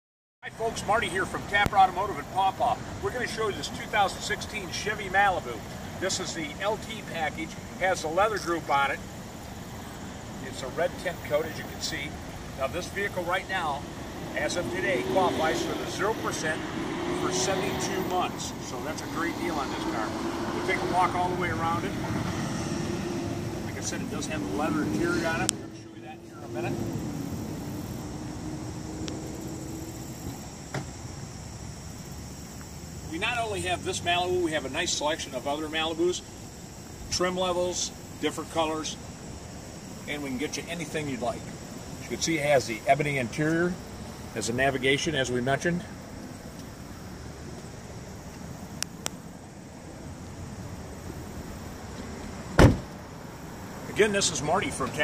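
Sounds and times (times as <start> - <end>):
steady background noise: 0.5 - 55.0
high insect drone: 2.0 - 55.0
car door shutting: 30.2 - 31.0, 52.5 - 53.0
car door latch click: 52.6 - 53.0.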